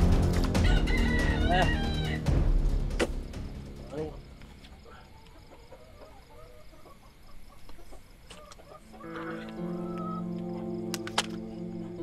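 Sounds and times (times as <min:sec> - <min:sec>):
soft background music: 0:00.0 - 0:06.2, 0:08.5 - 0:12.0
rooster crowing: 0:00.6 - 0:02.3.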